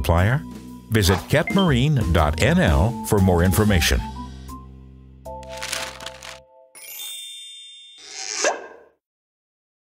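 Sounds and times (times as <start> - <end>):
background music: 0.0 - 7.6
bright high chime: 6.8 - 8.0.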